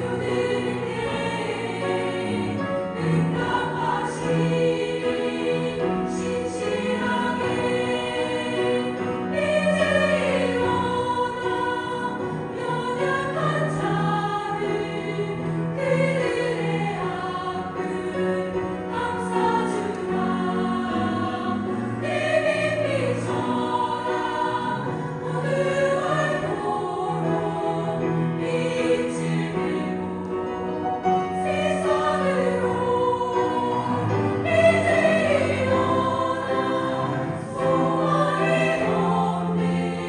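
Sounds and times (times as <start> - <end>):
women's choir singing in harmony: 0.0 - 40.0.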